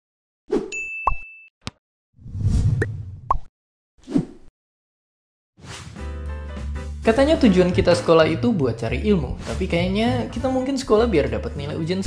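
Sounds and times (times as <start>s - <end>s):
ringing ding: 0.7s - 1.5s.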